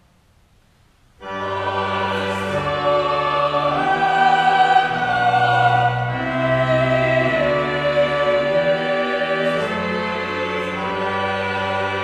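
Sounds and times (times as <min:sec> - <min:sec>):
church choir singing chords: 0:01.2 - 0:12.0.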